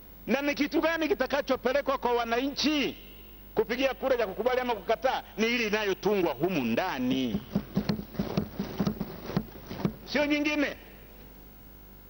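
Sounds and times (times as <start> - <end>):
people thumping desks: 7.1 - 10.5.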